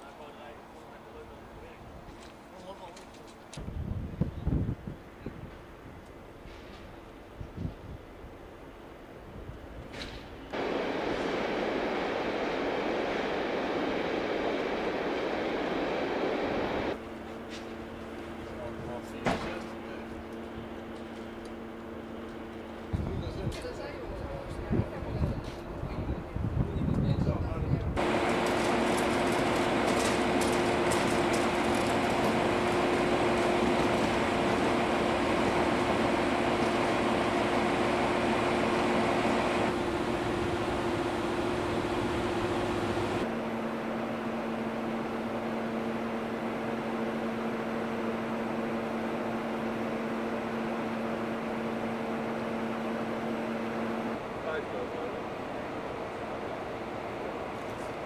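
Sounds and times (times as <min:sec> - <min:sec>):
train diesel engine idling: 0:10.4 - 0:26.4, 0:28.0 - 0:58.0.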